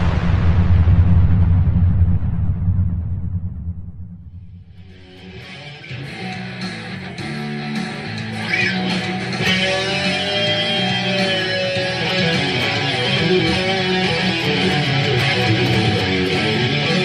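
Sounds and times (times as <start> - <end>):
loud low drone: 0.0 - 5.6
electric guitar notes and chords: 4.8 - 17.0.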